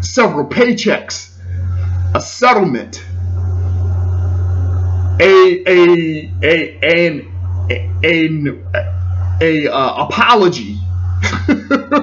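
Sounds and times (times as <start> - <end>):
loud steady low hum: 0.0 - 12.0.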